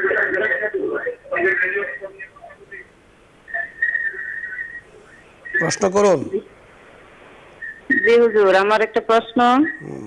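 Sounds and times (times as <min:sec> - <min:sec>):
telephone-line hiss: 0:00.0 - 0:10.0.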